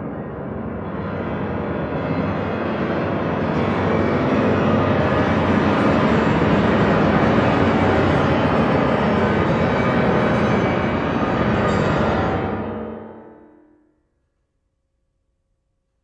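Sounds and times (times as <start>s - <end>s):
piano: 0.0s - 14.0s.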